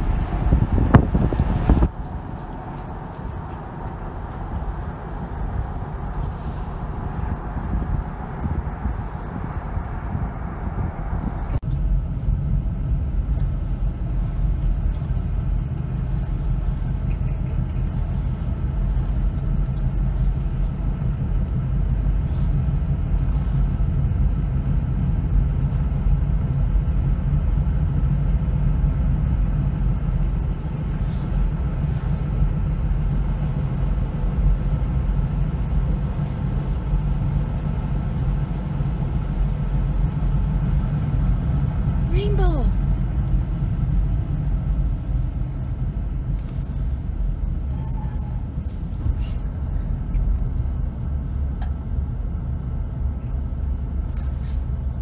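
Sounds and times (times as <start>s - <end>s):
car engine and tyre noise: 0.0s - 55.0s.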